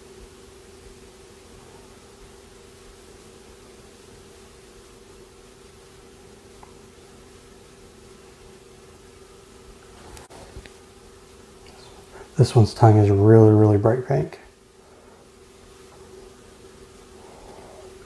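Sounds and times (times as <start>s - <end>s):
low steady hum: 0.0s - 18.0s
steady hiss: 0.0s - 18.0s.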